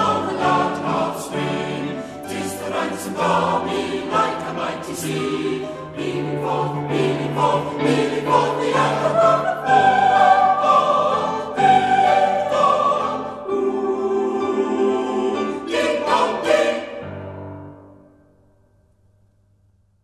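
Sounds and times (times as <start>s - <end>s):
choir singing a hymn: 0.0s - 17.9s.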